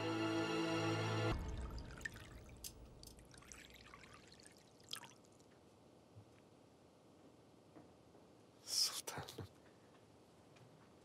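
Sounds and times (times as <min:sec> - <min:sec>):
background music: 0:00.0 - 0:03.2
coffee pouring and dripping: 0:01.5 - 0:05.6.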